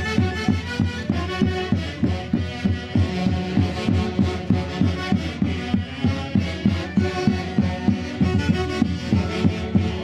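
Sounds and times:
street band saxophones and harp: 0.0 - 10.0.

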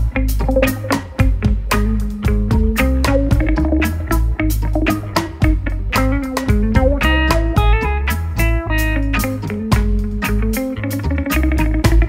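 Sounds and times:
electric guitar line: 0.0 - 12.0
reggae band playing: 0.0 - 12.0.

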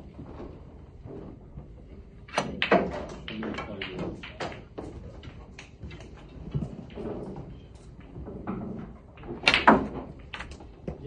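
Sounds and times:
snooker balls clicking: 1.2 - 11.0
faint knocks of balls: 2.2 - 11.0
cue tip striking ball: 9.3 - 10.5.

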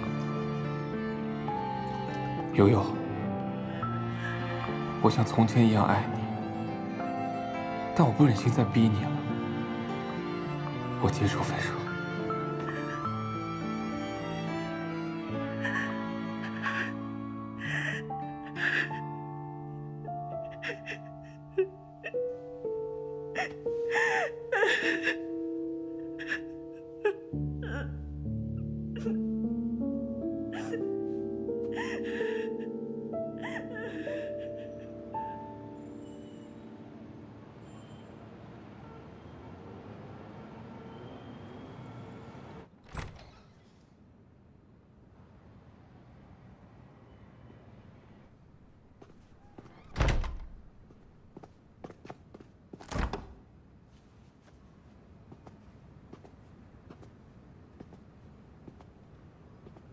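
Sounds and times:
soft background music: 0.0 - 41.7
woman crying and sobbing: 12.4 - 13.2, 15.4 - 22.4, 23.2 - 28.1, 28.9 - 29.3, 30.5 - 35.8
door shutting with thud: 42.8 - 43.7, 49.6 - 50.8, 52.8 - 53.4.

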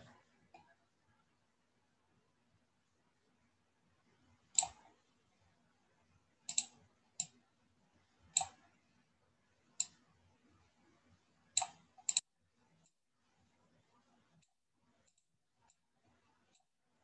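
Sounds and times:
mouse button clicking: 6.5 - 7.4.

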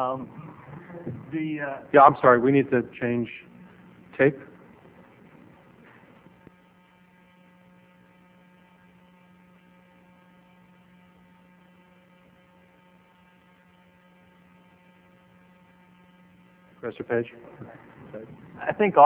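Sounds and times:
electrical mains hum: 0.0 - 19.0.

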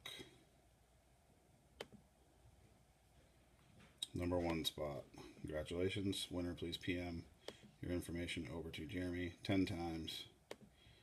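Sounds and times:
computer mouse click: 1.8 - 2.0.

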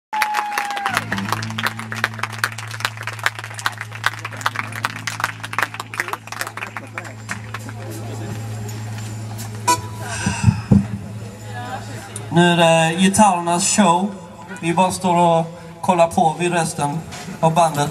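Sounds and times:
amplifier hum: 1.0 - 15.8
high tone: 1.6 - 15.6.

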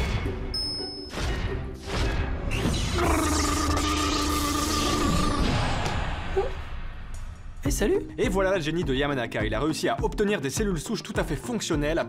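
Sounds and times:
music: 0.0 - 3.8, 5.7 - 12.0.

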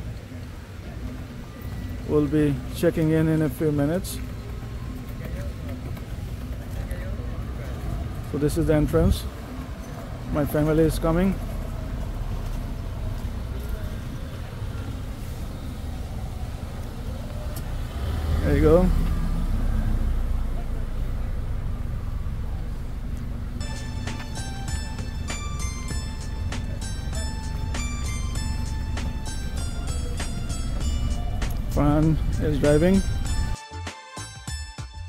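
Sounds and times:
car rolling on pavement: 0.0 - 33.6
faint distant voices: 0.0 - 33.6.

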